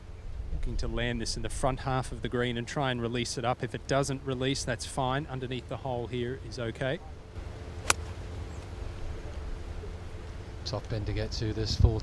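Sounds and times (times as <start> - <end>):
outdoor background noise: 0.0 - 12.0
golf club striking ball: 7.8 - 8.6.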